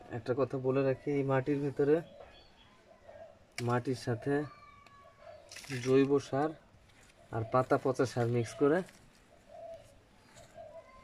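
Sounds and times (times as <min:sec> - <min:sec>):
pigeon cooing: 0:02.0 - 0:03.5, 0:08.4 - 0:11.0.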